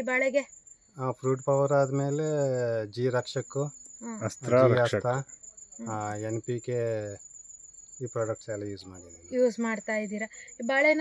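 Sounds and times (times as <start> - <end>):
crickets chirping: 0.0 - 11.0
man talking: 1.0 - 5.2, 5.9 - 7.2, 8.0 - 9.2.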